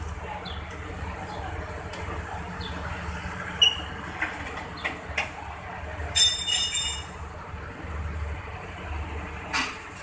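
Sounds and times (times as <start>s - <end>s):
train rumbling slowly: 0.0s - 10.0s.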